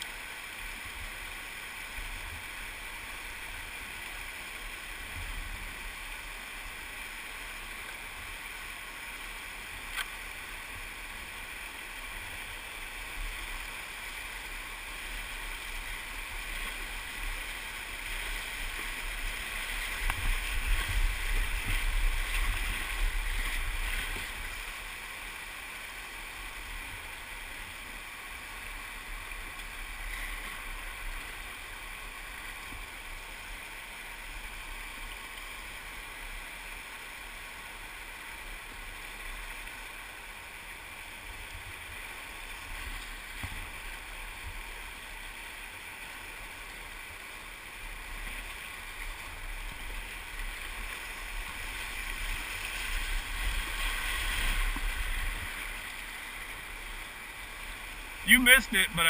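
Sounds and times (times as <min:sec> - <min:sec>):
river rapids rushing: 0:50.1 - 0:59.0.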